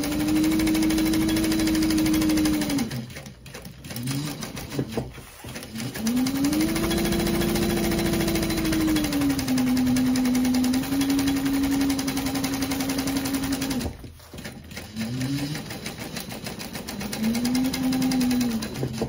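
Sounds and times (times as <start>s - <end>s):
sewing machine stitching: 0.0s - 19.0s.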